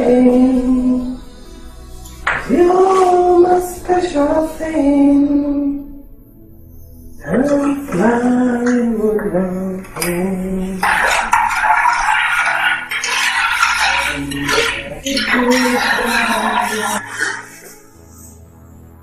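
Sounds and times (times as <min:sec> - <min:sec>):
woman singing: 0:07.3 - 0:11.2, 0:14.0 - 0:17.5.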